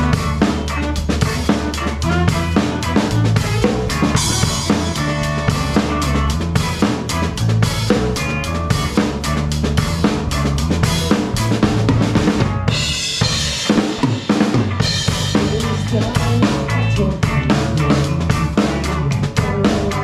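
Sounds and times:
drum kit: 0:00.0 - 0:20.0
live rock band: 0:00.0 - 0:20.0.

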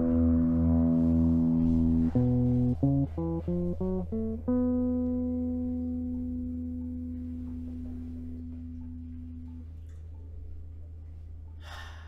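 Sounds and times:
steady low hum: 0:00.0 - 0:12.0
sharp intake of breath: 0:11.6 - 0:12.0.

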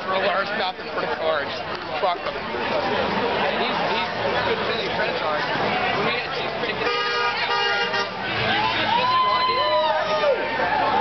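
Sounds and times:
car horn: 0:06.8 - 0:08.9.

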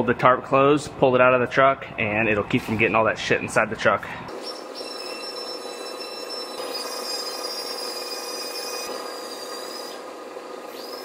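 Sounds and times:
high steady whines: 0:04.1 - 0:11.0.

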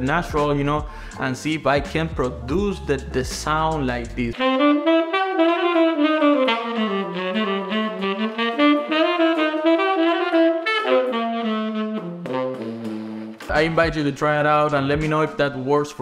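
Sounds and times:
tenor saxophone playing: 0:04.3 - 0:13.5.

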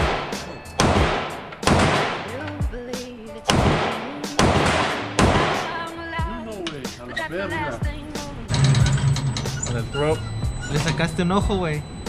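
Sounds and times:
rap music with vocals: 0:00.0 - 0:00.8, 0:02.0 - 0:12.0
gunshots: 0:00.0 - 0:02.5, 0:03.5 - 0:05.9.

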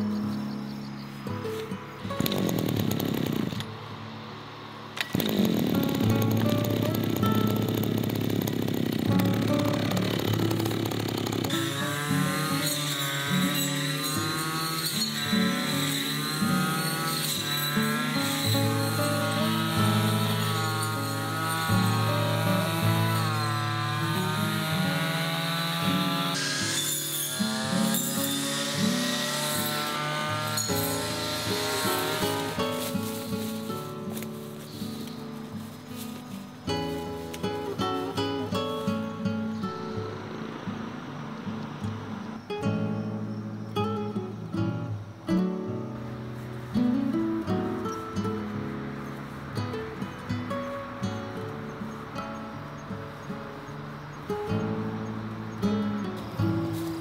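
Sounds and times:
brush cutter engine revving: 0:01.6 - 0:03.9, 0:04.8 - 0:42.4, 0:56.2 - 0:57.0
background music: 0:09.0 - 0:35.1.

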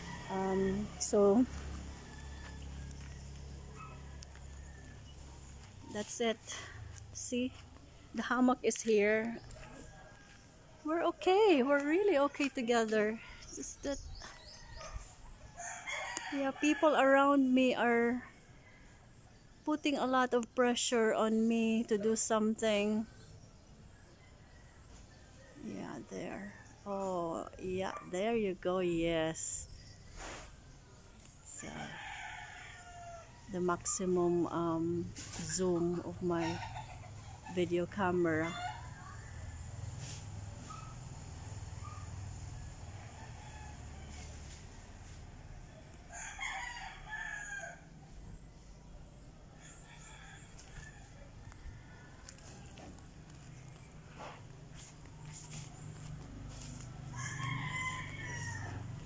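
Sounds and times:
rooster crowing: 0:00.0 - 0:01.0, 0:01.8 - 0:05.1, 0:14.5 - 0:16.9, 0:45.8 - 0:47.9, 0:56.6 - 0:59.0.

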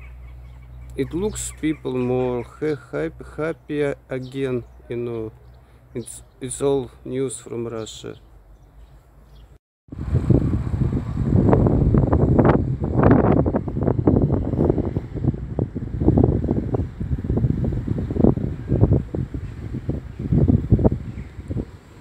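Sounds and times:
wind buffeting microphone: 0:09.9 - 0:22.0.

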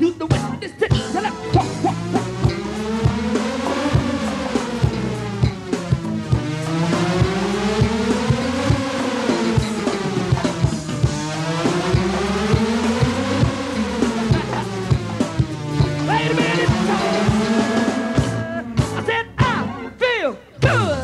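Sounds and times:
drum kit beat: 0:00.0 - 0:20.0, 0:20.6 - 0:21.0
sweeping pitch effect: 0:01.5 - 0:19.0.

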